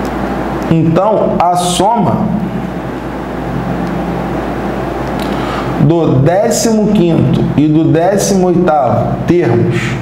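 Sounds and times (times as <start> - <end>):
low hum and hiss: 0.0 - 10.0.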